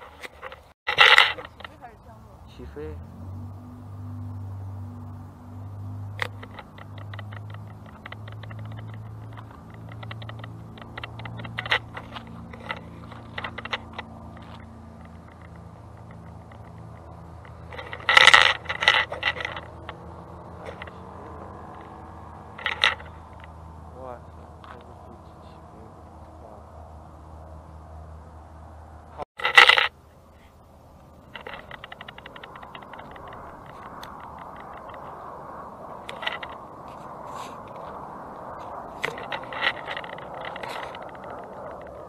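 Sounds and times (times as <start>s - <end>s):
distant light aircraft engine drone: 0.0s - 42.0s
rapid clicking and rattling: 6.1s - 20.0s, 31.1s - 35.3s, 35.9s - 42.0s.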